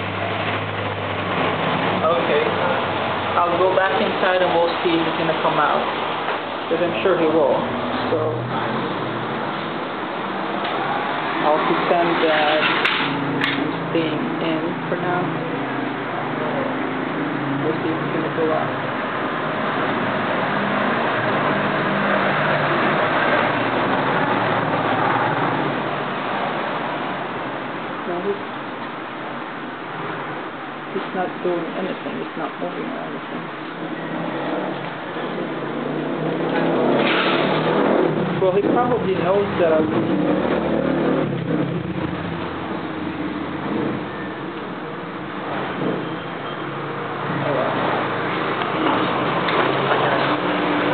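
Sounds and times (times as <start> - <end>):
vehicle engine passing: 0.0 - 28.4, 29.8 - 50.9
road traffic rushing: 0.0 - 50.9.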